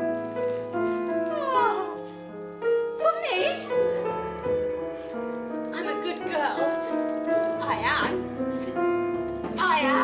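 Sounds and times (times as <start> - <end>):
piano sustained notes: 0.0 - 10.0.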